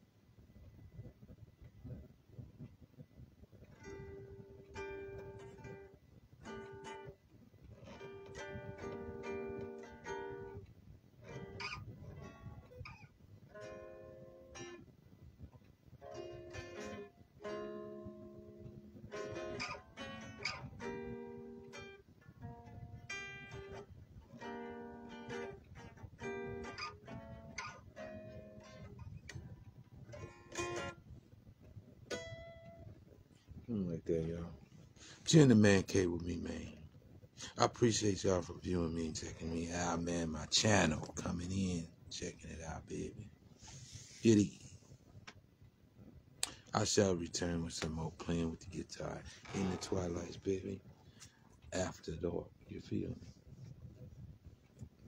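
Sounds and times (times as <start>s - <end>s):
solo guitar picked: 3.6s - 43.3s, 46.4s - 54.0s.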